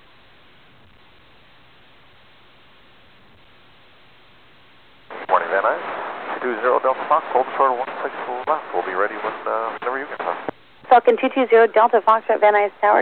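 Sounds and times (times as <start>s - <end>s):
radio speech: 5.1s - 13.0s.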